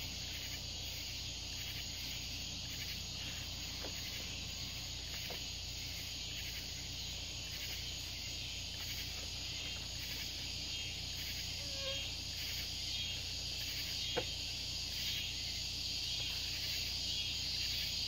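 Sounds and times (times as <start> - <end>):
insects chirping: 0.0 - 18.0.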